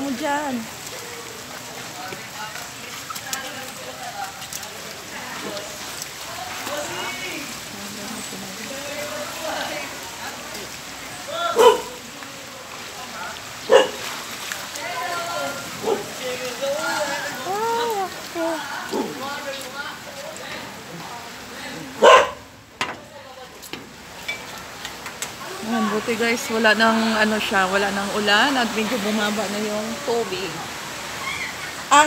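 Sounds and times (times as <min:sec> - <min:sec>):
floodwater rushing: 0:00.0 - 0:32.0
people's voices: 0:00.0 - 0:32.0
rain hiss: 0:00.0 - 0:32.0
dog barking: 0:11.6 - 0:12.0, 0:13.7 - 0:14.0, 0:15.8 - 0:16.1, 0:22.0 - 0:22.4.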